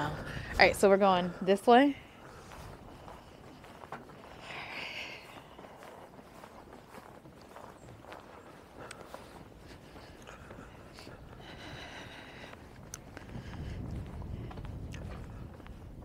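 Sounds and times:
footsteps on boardwalk: 0.0s - 16.0s.

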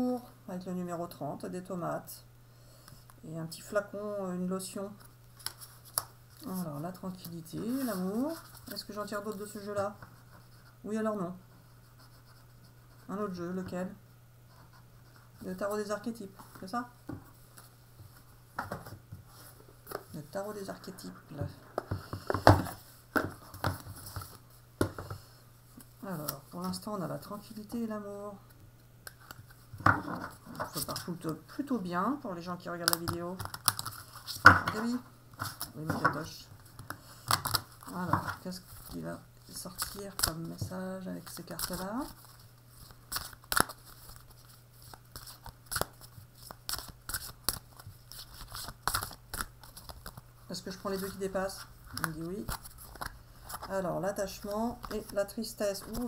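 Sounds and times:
cards being shuffled: 32.8s - 56.0s.

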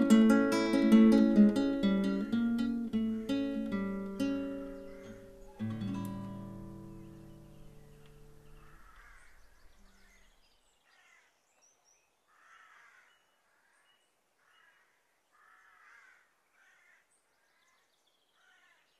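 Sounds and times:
acoustic guitar chord: 0.0s - 8.9s
bird caws: 4.8s - 5.8s, 8.3s - 11.4s, 12.3s - 18.9s.

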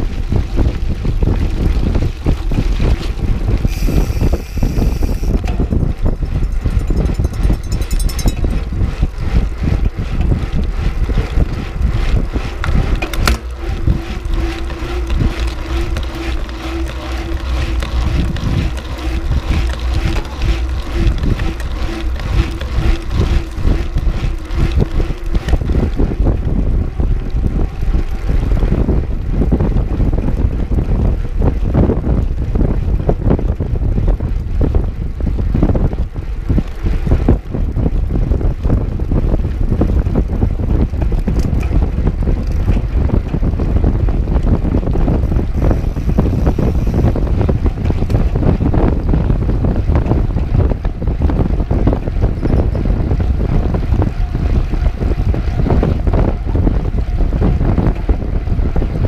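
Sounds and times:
steady hum: 0.0s - 32.0s
bike rattling and knocking: 0.0s - 59.0s
bike tyres on gravel: 0.0s - 59.0s
wind buffeting microphone: 0.0s - 59.0s.

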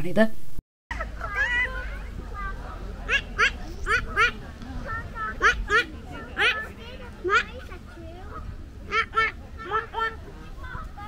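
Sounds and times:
geese honking: 3.0s - 4.4s, 5.2s - 7.5s, 8.9s - 10.3s.

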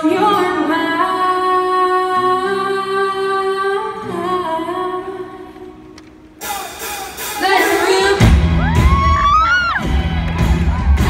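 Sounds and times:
woman singing into microphone: 0.0s - 5.8s, 7.4s - 8.4s.

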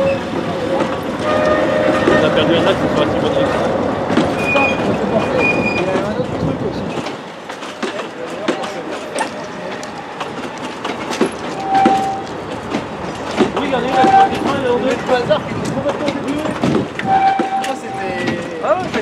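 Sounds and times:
train wheels clicking over track: 0.0s - 19.0s
wheels squeaking: 4.2s - 6.4s, 7.6s - 19.0s.

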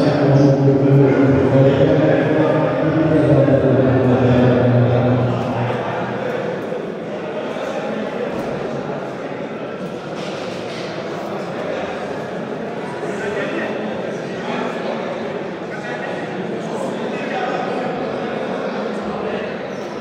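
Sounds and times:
echoing chatter in gym: 0.0s - 20.0s.

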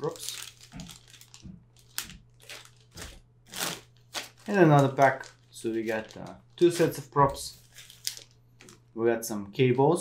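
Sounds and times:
plastic bag crinkling: 0.0s - 8.9s.

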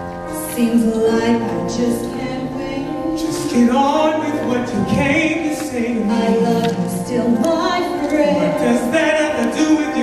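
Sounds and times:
singers holding long notes: 0.0s - 10.0s.

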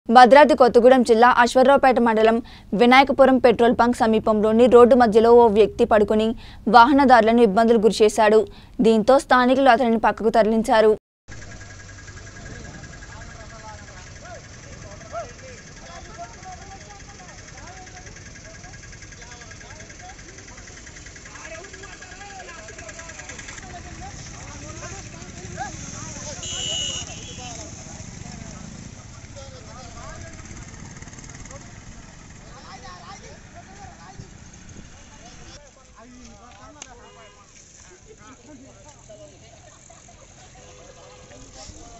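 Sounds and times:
men talking: 12.4s - 18.4s, 19.1s - 30.6s, 31.4s - 41.9s.

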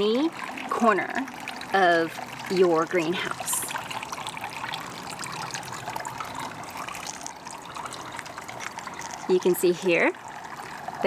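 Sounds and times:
water trickling: 0.0s - 11.0s.

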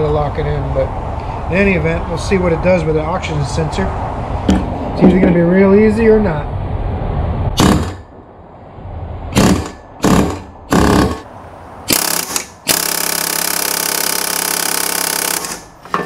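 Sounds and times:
pneumatic air hammer blows: 7.6s - 8.0s, 9.3s - 11.3s, 11.9s - 16.0s.

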